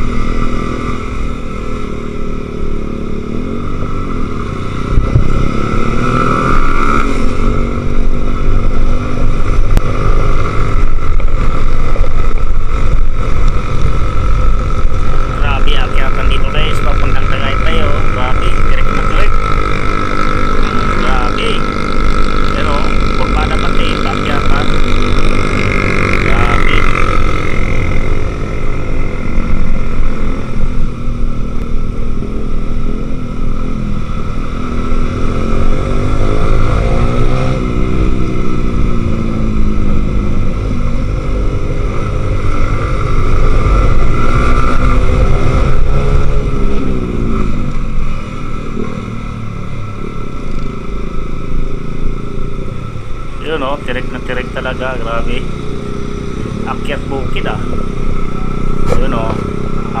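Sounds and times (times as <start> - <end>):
wind rumble on microphone: 0.0 - 23.4
motorcycle engine running: 0.0 - 60.0.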